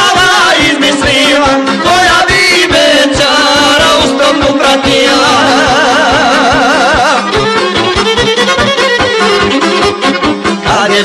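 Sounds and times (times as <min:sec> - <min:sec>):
quick rhythmic backing: 0:00.0 - 0:11.0
violin playing fast melody: 0:00.0 - 0:11.0.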